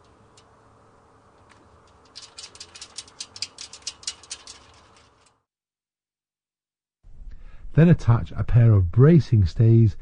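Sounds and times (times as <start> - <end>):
metal parts clicking and rattling: 1.4 - 5.4.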